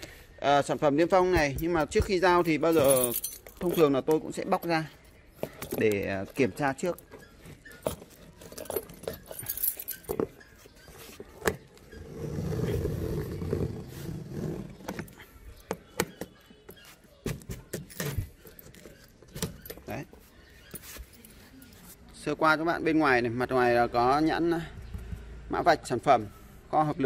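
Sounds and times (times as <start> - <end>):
keys jangling and scraping: 1.8 - 11.2.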